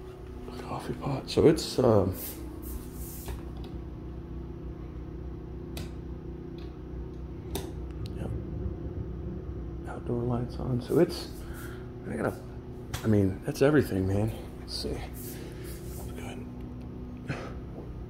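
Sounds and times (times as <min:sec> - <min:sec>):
electrical hum of appliances: 0:00.0 - 0:18.0
switch clicks: 0:05.7 - 0:08.2.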